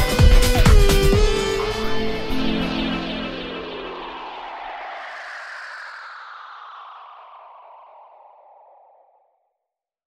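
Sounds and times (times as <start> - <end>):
hissy echoing sound effect: 1.1 - 9.2.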